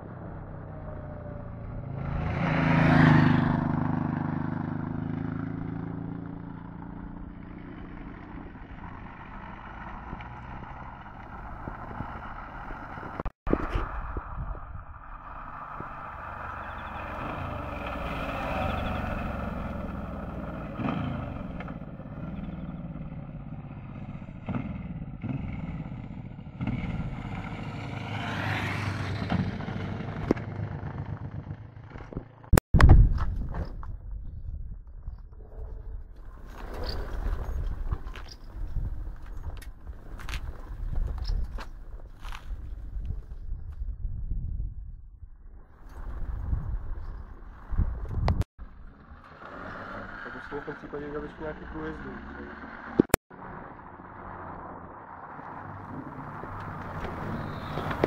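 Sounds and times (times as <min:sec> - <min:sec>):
motorcycles riding past: 0:00.0 - 0:13.3, 0:14.0 - 0:32.5, 0:48.7 - 0:58.0.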